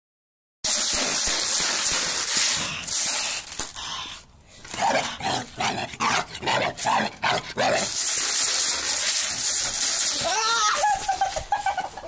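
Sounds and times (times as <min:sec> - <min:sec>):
puppy barking and growling: 0:04.7 - 0:07.9.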